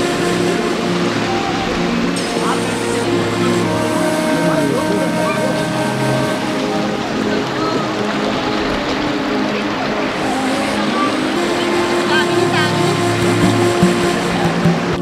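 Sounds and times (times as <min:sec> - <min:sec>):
background music: 0:00.0 - 0:15.0
faint voices: 0:00.0 - 0:15.0
stream running over rocks: 0:00.0 - 0:15.0.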